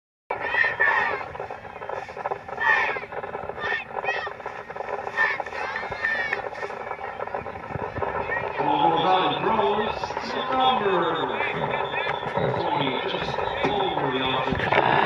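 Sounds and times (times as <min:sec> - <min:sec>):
voices yelling together: 0:00.3 - 0:01.3, 0:02.5 - 0:04.4, 0:05.1 - 0:06.5
people shouting calls: 0:00.3 - 0:15.0.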